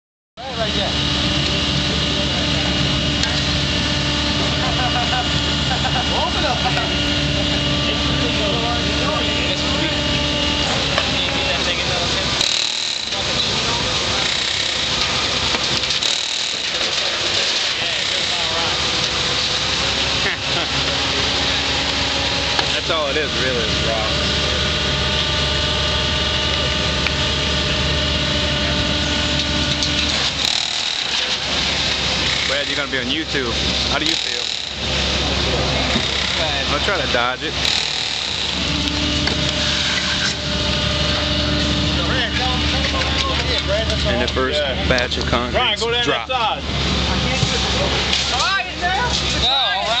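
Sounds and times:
concrete mixer engine running: 0:00.4 - 0:50.0
people calling and talking: 0:00.4 - 0:50.0.

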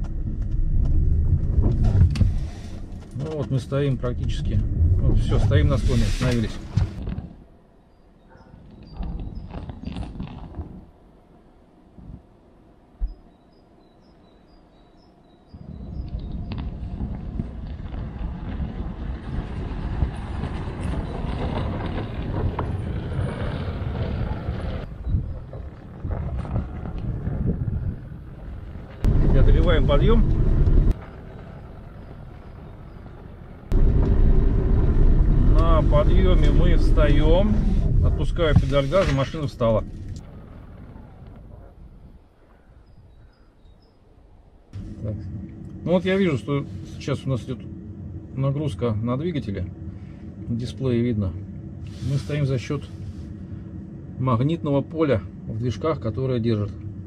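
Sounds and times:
vehicle tyres rumbling over snow: 0:00.0 - 0:07.6, 0:08.6 - 0:11.2, 0:15.5 - 0:42.7.

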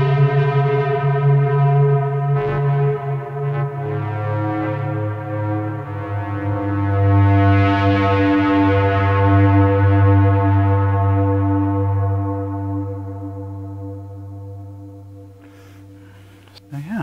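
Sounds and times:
distorted synthesizer drone: 0:00.0 - 0:17.0.

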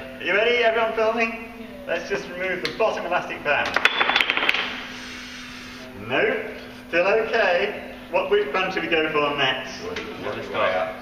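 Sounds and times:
wooden toy blocks clattering: 0:03.7 - 0:04.8.

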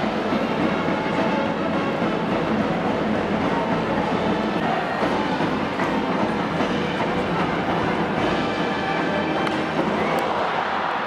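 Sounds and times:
stadium crowd noise: 0:00.0 - 0:11.0.

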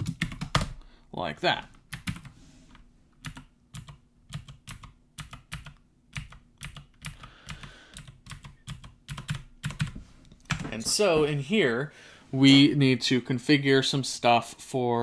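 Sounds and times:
computer keyboard typing: 0:00.0 - 0:00.8, 0:01.9 - 0:02.3, 0:03.2 - 0:10.7.

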